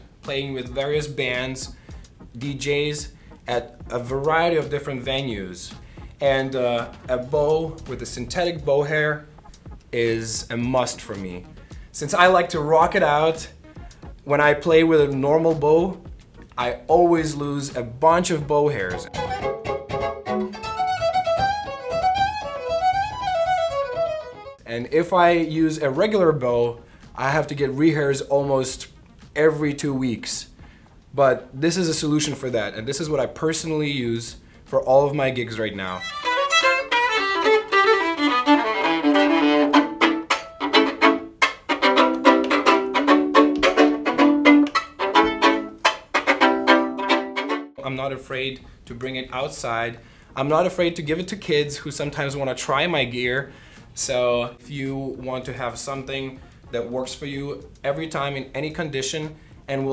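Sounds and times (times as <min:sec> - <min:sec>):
electric violin playing: 0:18.8 - 0:24.7, 0:35.8 - 0:47.8.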